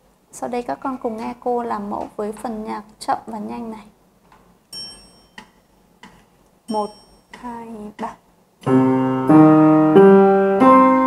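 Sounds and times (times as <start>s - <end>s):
metronome count-in clicks: 4.8s - 8.2s.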